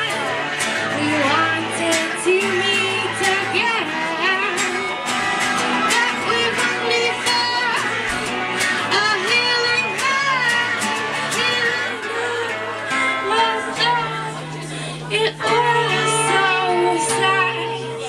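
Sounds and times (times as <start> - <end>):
electric guitars strummed: 0.0 - 18.0
woman singing into microphone: 0.0 - 18.0.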